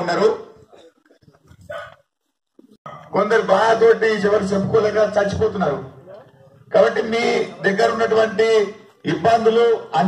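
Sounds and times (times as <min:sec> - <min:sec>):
man speaking through microphone: 0:00.0 - 0:00.8, 0:03.0 - 0:10.0.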